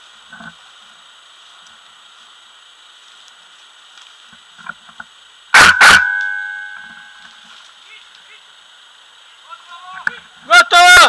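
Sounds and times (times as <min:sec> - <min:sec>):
ringing tone: 0:05.6 - 0:07.4.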